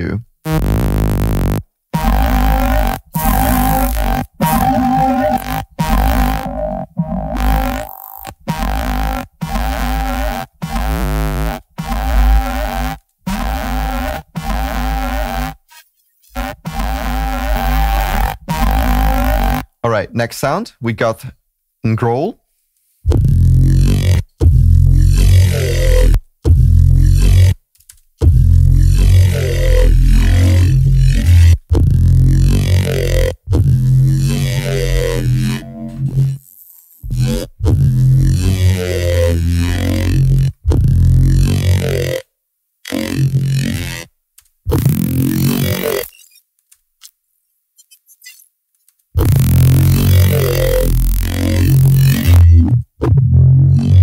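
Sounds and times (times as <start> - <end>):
growl bass synth: 0.0 - 15.7, 16.3 - 19.7, 23.1 - 27.6, 28.2 - 36.4, 37.0 - 42.2, 42.9 - 44.1, 44.7 - 46.1, 49.2 - 54.0.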